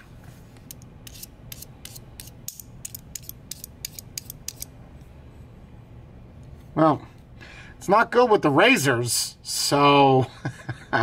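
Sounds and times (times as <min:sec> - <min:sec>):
razor blade scraping coated shell: 0:00.7 - 0:04.7.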